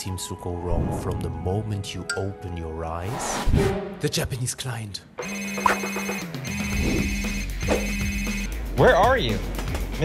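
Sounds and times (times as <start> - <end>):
phone ringtone ringing: 5.2 - 8.5.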